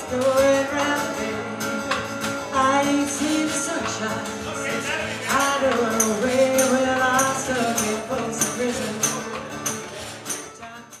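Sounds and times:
acoustic guitar: 0.0s - 11.0s
tambourine strikes: 4.7s - 11.0s.

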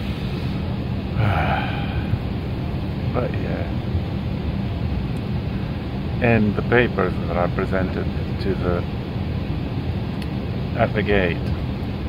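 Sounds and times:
airliner cabin rumble: 0.0s - 12.0s
muffled vocal sound: 1.1s - 2.2s.

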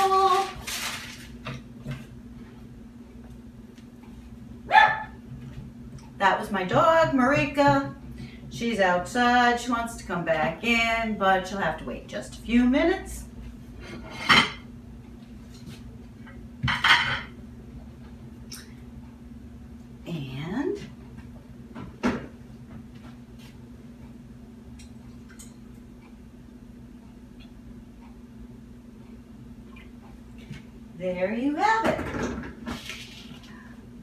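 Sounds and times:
faint steady hum: 0.0s - 34.0s
dog barking: 4.7s - 5.2s
dishes clattering on table: 13.9s - 14.7s, 16.6s - 17.4s.

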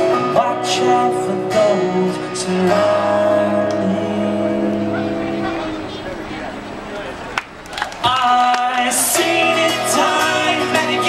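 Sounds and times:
guitar and banjo chord ringing: 0.0s - 7.4s
audience murmur: 2.7s - 10.0s.

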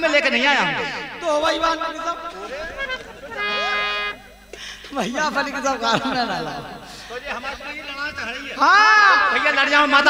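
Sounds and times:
man speaking into a microphone: 4.9s - 10.0s.

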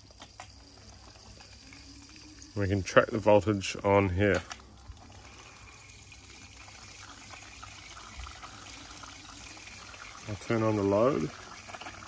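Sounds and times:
water spilling onto wet concrete: 0.0s - 12.0s
water trickling from hose generator: 0.0s - 12.0s.

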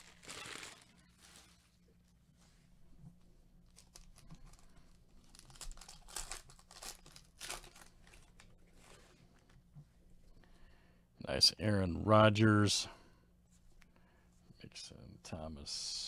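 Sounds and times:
foil pack tearing and crinkling: 0.0s - 1.7s, 3.7s - 8.5s.

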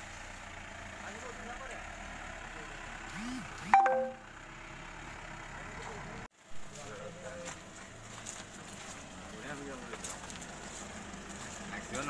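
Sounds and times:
distant truck engine at low revs: 0.0s - 12.0s.

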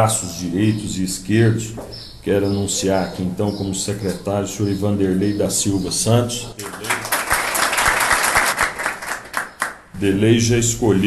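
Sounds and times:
audience applauding: 6.6s - 9.8s.

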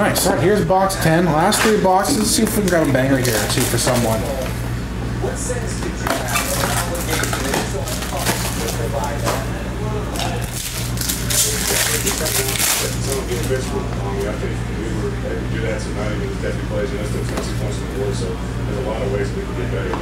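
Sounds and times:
plastic and foil crinkling: 2.1s - 4.6s, 6.2s - 9.4s, 10.2s - 13.8s.

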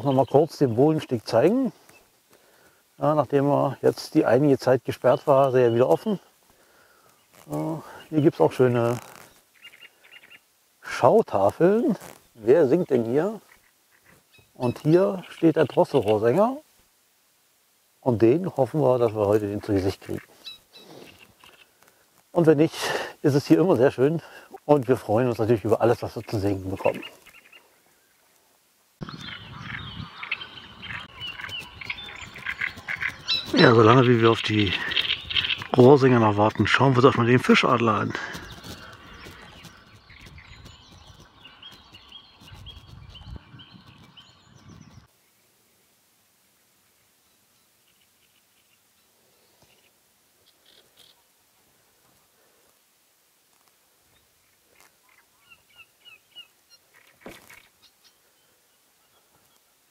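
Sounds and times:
birds singing: 0.0s - 16.6s, 18.1s - 21.8s, 22.4s - 28.4s, 29.0s - 45.4s, 47.2s - 51.3s, 54.1s - 59.9s.

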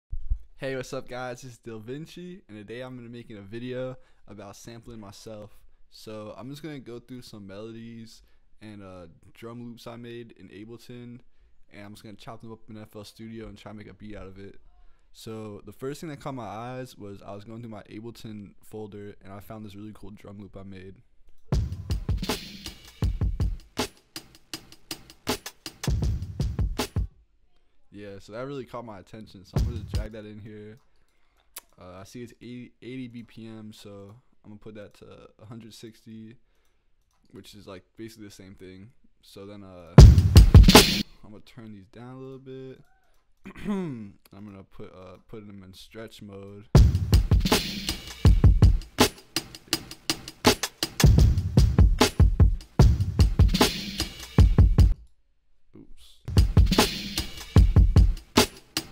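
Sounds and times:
busy hi-hat strikes: 21.5s - 27.1s, 29.6s - 30.2s, 40.0s - 41.0s, 46.8s - 55.0s, 56.3s - 58.9s
snare drum: 21.6s - 27.1s, 29.6s - 30.1s, 40.0s - 41.0s, 46.8s - 55.0s, 56.3s - 58.9s
deep kick drum hits: 29.6s - 30.1s, 40.0s - 40.8s, 46.8s - 47.5s, 48.3s - 48.9s, 51.1s - 53.6s, 56.3s - 56.8s.

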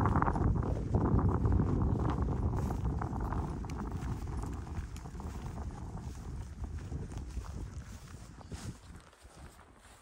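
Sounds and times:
footsteps on grass: 0.0s - 10.0s.

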